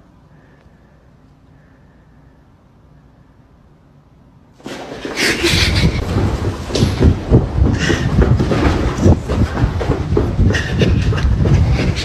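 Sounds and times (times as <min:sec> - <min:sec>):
running footfalls: 0:04.6 - 0:12.0.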